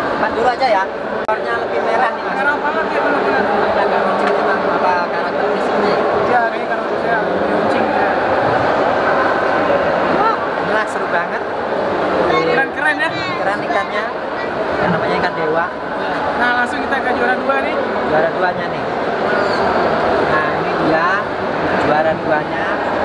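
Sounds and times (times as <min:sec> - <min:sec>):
crowd chatter in a hall: 0:00.0 - 0:23.0.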